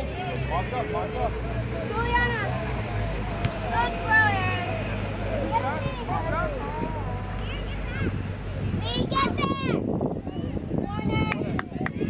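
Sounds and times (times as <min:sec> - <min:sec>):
distant voices calling out: 0:00.0 - 0:10.7.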